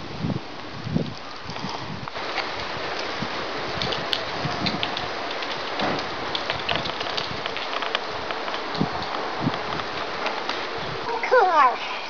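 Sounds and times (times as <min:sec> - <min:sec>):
wind on microphone: 0:00.0 - 0:11.3.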